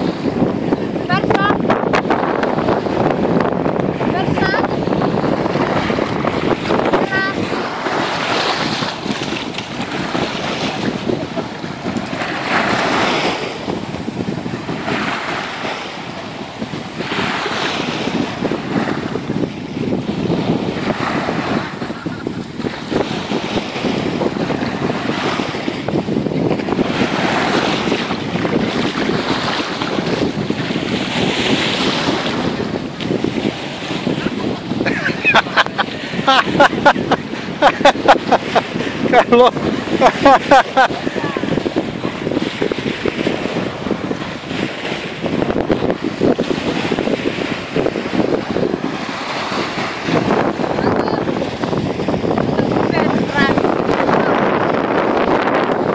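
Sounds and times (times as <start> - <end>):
waves washing onto shore: 0.0 - 55.9
wind buffeting microphone: 0.0 - 55.9.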